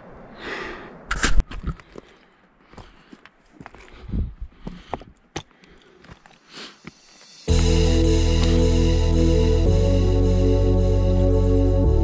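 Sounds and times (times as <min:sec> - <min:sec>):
stones clacking underfoot: 0:01.4 - 0:07.1
footsteps on loose shale: 0:01.4 - 0:07.7.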